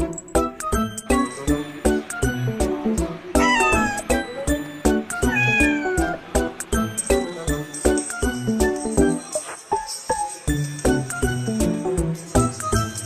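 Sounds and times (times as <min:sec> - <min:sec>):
music with tinkling beat: 0:00.0 - 0:01.8, 0:06.7 - 0:13.0
cat meowing: 0:03.4 - 0:04.2, 0:05.1 - 0:06.2.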